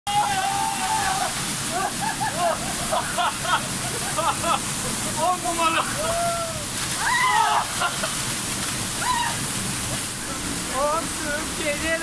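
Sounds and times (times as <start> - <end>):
waterfall pouring into pool: 0.1 - 12.0
man laughing: 1.7 - 5.2.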